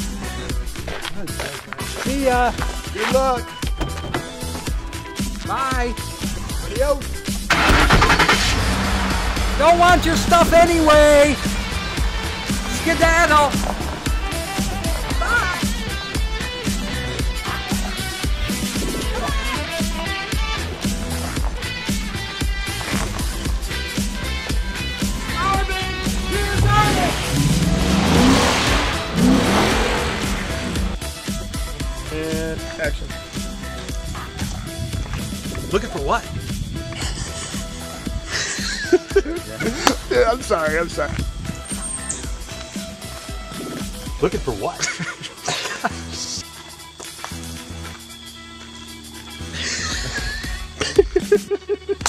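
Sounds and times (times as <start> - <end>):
background music: 0.0 - 52.0
pickup engine starting: 7.3 - 18.0, 23.0 - 31.0.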